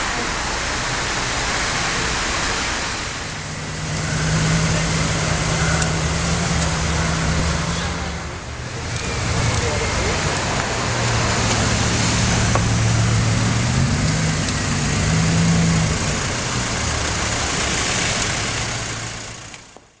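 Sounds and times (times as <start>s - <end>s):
street traffic hiss: 0.0s - 20.0s
car engine passing by: 0.7s - 19.8s.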